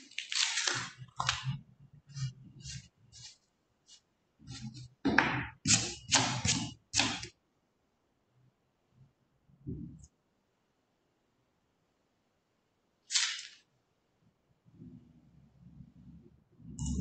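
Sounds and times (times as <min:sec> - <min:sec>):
pen scratching on paper: 0:02.1 - 0:05.0, 0:05.6 - 0:07.3.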